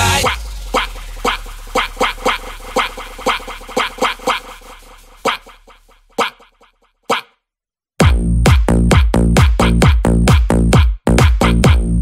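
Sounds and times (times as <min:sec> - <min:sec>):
punchy sampled hits: 0:08.0 - 0:11.9
low bass: 0:08.0 - 0:12.0.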